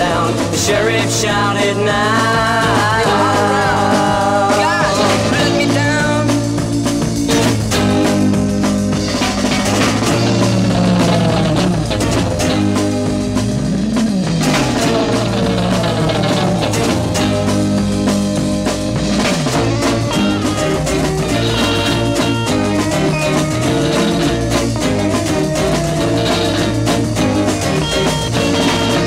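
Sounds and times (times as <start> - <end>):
bass guitar: 0.0 - 29.0
drum kit: 0.0 - 29.0
electric guitar: 0.0 - 29.0.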